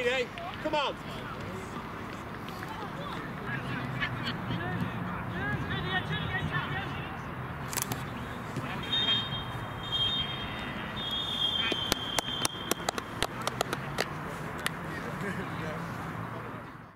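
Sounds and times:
referee's whistle blasts: 8.8s - 13.0s
sharp claps: 11.6s - 14.8s.

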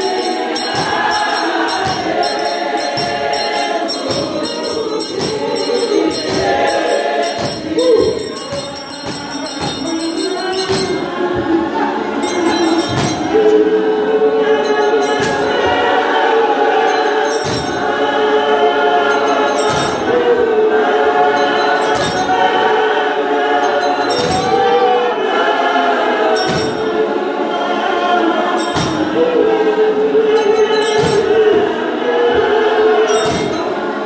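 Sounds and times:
sharp beat keeping time: 0.0s - 27.3s
women's choir singing a hymn: 0.0s - 34.0s.

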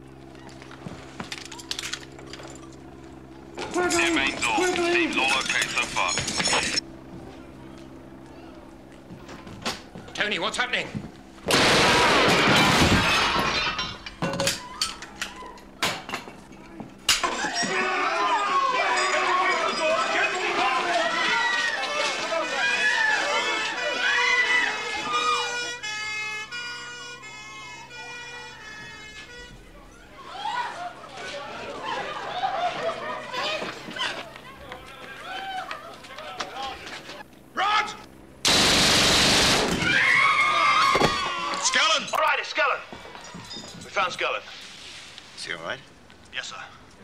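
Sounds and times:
steady low hum: 0.0s - 21.5s, 22.1s - 47.0s
crowd shouting and calling out: 16.6s - 26.6s, 27.2s - 38.1s, 39.9s - 43.2s
men shouting over one another: 17.3s - 25.6s.

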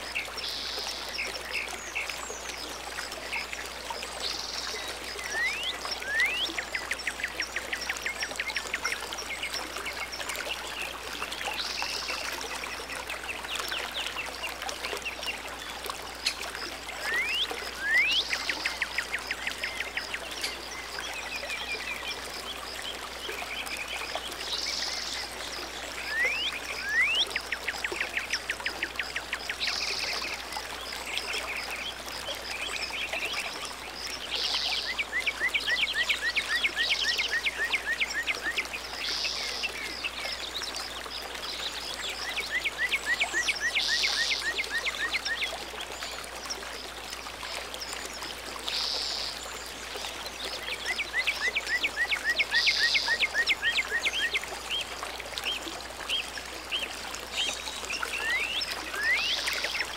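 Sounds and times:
songbird singing: 0.0s - 46.7s, 48.6s - 59.9s
water trickling: 0.0s - 59.9s.

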